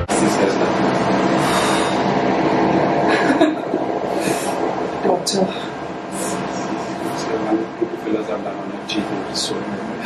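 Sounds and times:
faint hum: 0:00.0 - 0:10.0
machine rushing noise: 0:00.0 - 0:10.0.

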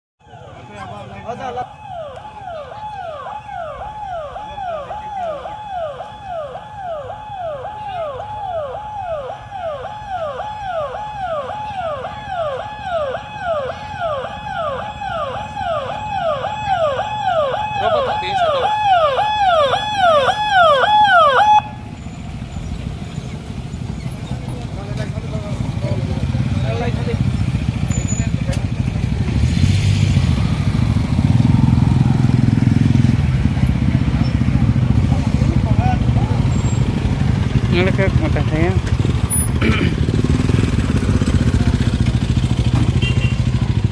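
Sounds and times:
ambulance siren falling tone: 0:00.2 - 0:23.1
low vehicle engine noise: 0:00.2 - 0:43.9
motorcycle engines: 0:00.2 - 0:43.9.

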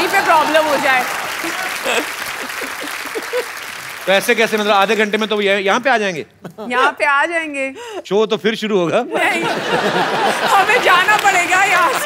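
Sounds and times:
audience applauding: 0:00.0 - 0:05.7, 0:09.7 - 0:12.0.

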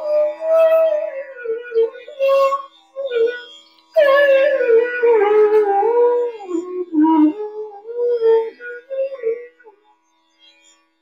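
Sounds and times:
bamboo flute melody: 0:00.0 - 0:09.9.

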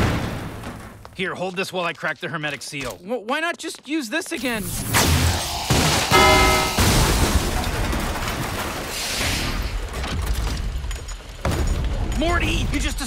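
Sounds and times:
short pitched chord: 0:06.1 - 0:07.1.

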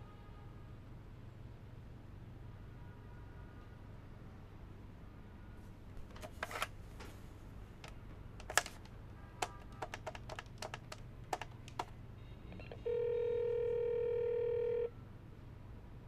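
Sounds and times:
telephone keys clicking: 0:06.0 - 0:06.7, 0:07.8 - 0:12.8
telephone tone: 0:12.2 - 0:15.0.

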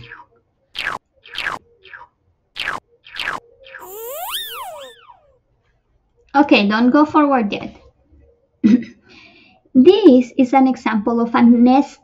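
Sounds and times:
gliding game tone: 0:03.8 - 0:05.3.

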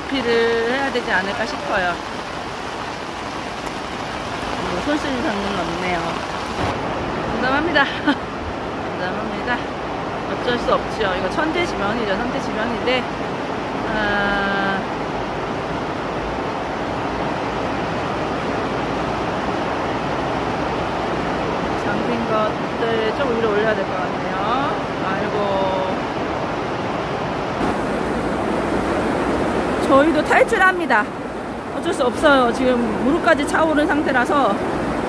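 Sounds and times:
heavy rain on water: 0:00.0 - 0:35.0.

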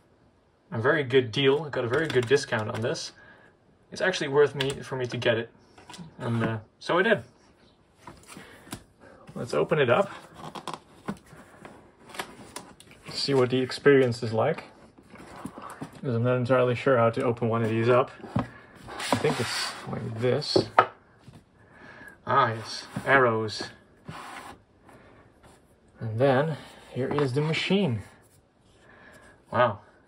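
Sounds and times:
cardboard rubbing and scraping: 0:17.6 - 0:20.2, 0:22.5 - 0:24.6.

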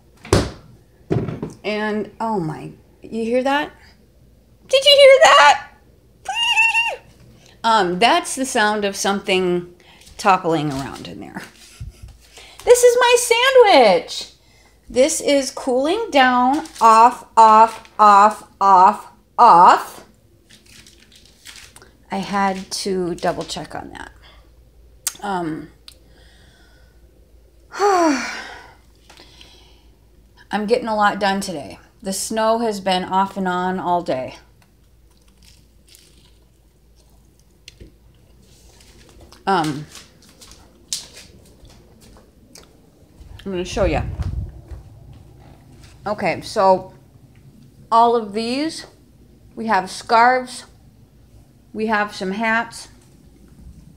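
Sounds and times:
phone microphone handling rumble: 0:41.4 - 0:46.1.

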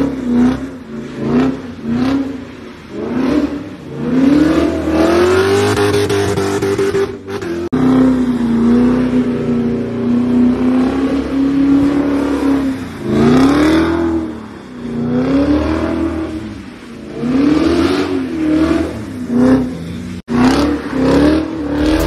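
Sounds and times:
car engine revving hard: 0:20.3 - 0:22.0.

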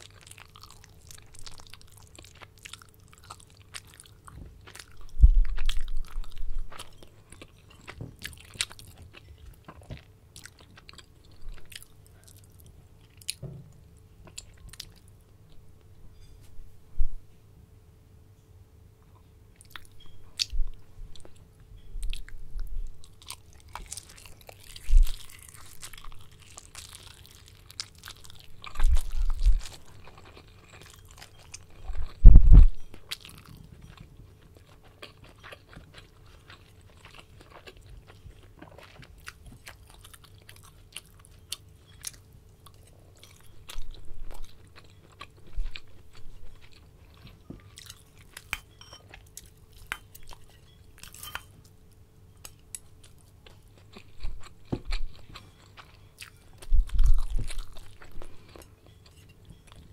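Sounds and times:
dull low thumps: 0:05.1 - 0:06.7, 0:32.0 - 0:32.8
wet chewing: 0:23.0 - 0:51.5, 0:52.4 - 0:59.9.

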